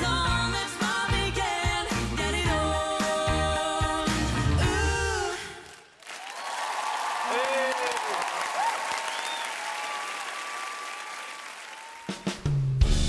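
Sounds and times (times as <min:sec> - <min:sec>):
audience applauding and cheering: 0:05.3 - 0:12.7
shouted whoops: 0:06.2 - 0:12.3.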